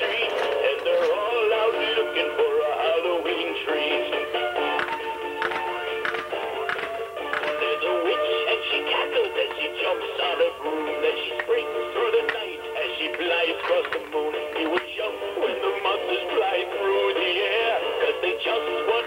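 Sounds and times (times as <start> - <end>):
toy singing through tinny speaker: 0.0 - 19.0.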